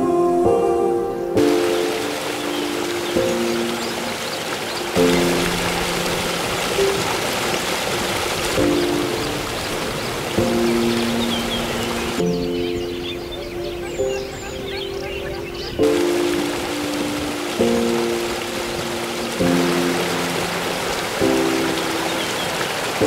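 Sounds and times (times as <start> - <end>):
slow held-note music: 0.0 - 7.8, 8.4 - 23.0
stream rushing over rocks: 1.4 - 23.0.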